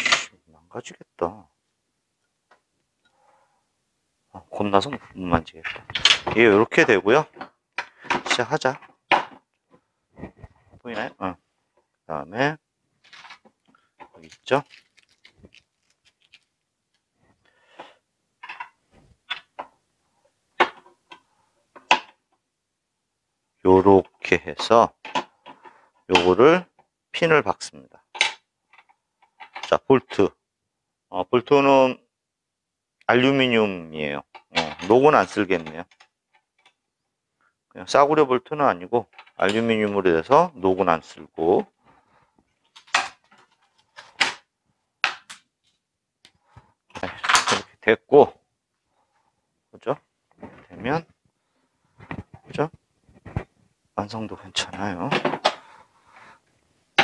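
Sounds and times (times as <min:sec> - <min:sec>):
hard plastic parts clacking: 0:04.9 - 0:11.2, 0:13.0 - 0:17.1, 0:28.1 - 0:30.2, 0:39.0 - 0:39.6, 0:42.6 - 0:45.8, 0:46.5 - 0:47.7, 0:54.6 - 0:55.7
hard plastic parts clicking: 0:05.6 - 0:06.5.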